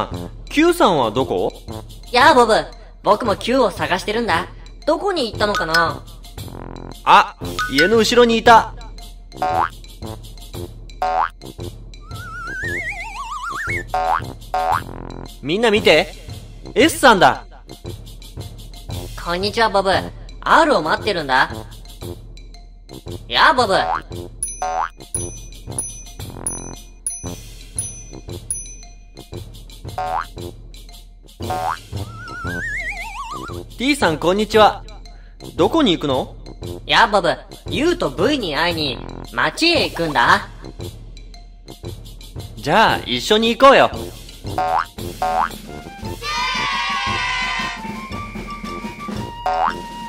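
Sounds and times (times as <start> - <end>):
children's background music: 0.0 - 50.0
cartoon boing sounds: 9.4 - 9.7, 12.0 - 14.8, 30.0 - 30.3, 31.4 - 33.6, 44.6 - 45.6, 49.4 - 49.9
warbling tone climbing in pitch: 12.0 - 13.9, 32.0 - 33.6
wavering rising whistle: 12.0 - 13.9, 32.0 - 33.6, 47.8 - 50.0.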